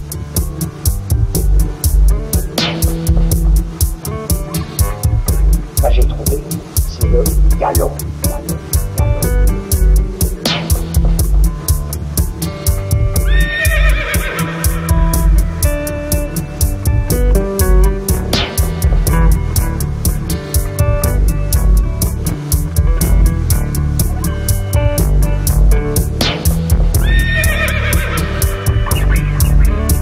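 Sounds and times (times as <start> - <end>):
quick steady beat: 0.0 - 13.9, 14.7 - 27.6, 28.4 - 30.0
fast ticking percussion: 3.5 - 12.0
sustained guitar: 4.1 - 13.5, 14.6 - 30.0
live band music: 4.2 - 9.4
electronic tones: 5.8 - 8.5
horse whinny: 13.4 - 14.9, 27.0 - 28.6.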